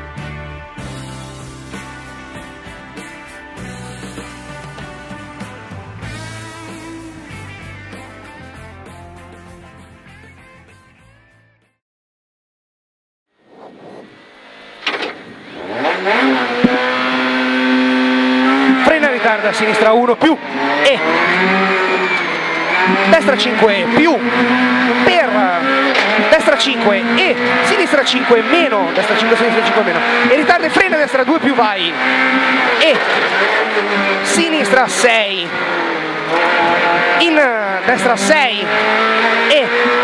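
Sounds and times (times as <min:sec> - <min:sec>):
car engine revving: 0:00.8 - 0:08.8, 0:13.4 - 0:40.0.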